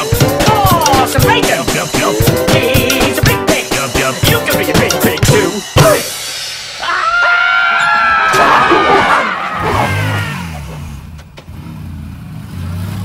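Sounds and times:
person screaming: 6.8s - 10.7s
motorcycle engine revving: 9.6s - 13.0s.

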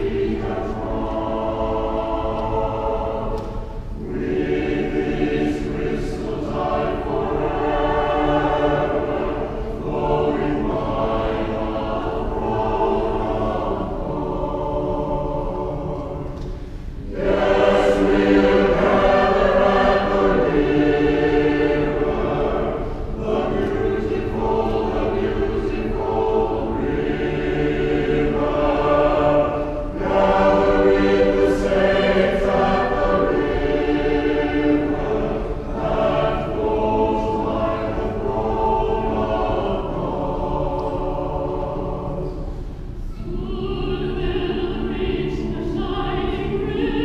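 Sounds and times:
church choir singing: 0.0s - 47.0s.

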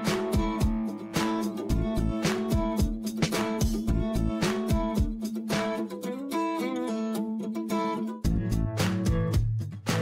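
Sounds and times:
plucked guitar melody: 0.0s - 10.0s.

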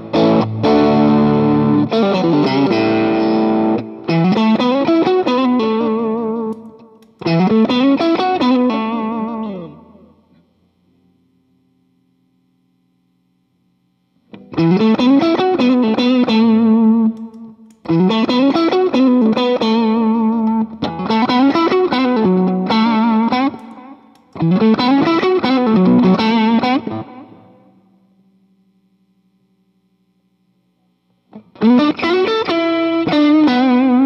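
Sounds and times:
overdriven electric guitar phrase: 0.0s - 10.2s, 14.3s - 27.9s, 31.3s - 34.0s
faint amp hum: 0.0s - 34.0s.

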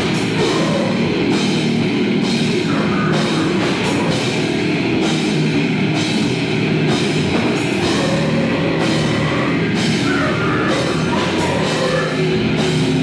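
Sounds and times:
death metal band playing live: 0.0s - 13.0s
drums and cymbals: 0.0s - 13.0s.

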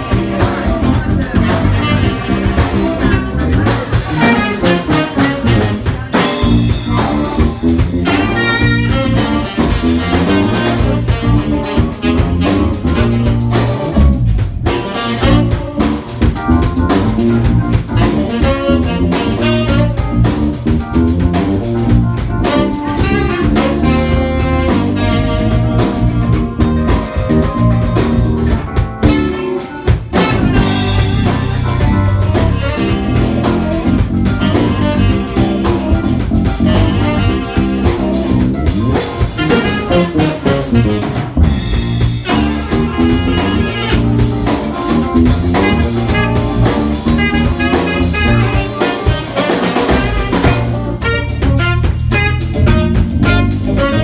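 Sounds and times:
bass guitar: 0.0s - 54.0s
drum kit: 0.0s - 54.0s
guitar: 0.0s - 54.0s
piano: 0.0s - 54.0s
tenor saxophone: 0.0s - 54.0s.

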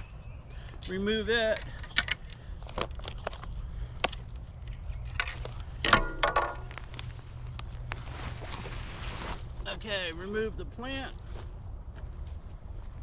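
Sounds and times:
wooden stake clatter: 1.4s - 7.6s.

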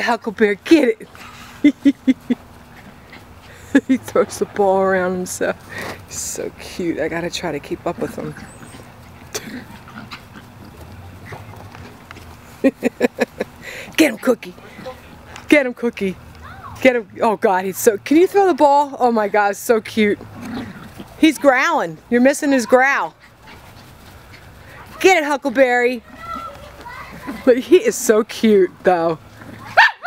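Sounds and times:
faint movement sounds: 0.0s - 29.8s
dog grunting: 7.9s - 11.5s, 20.3s - 21.2s.

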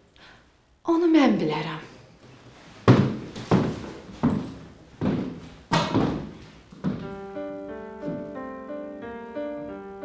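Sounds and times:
footsteps on hard floor: 2.6s - 8.6s.

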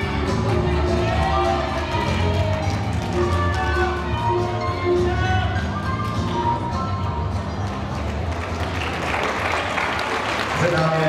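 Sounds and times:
audience applauding: 7.6s - 11.0s.

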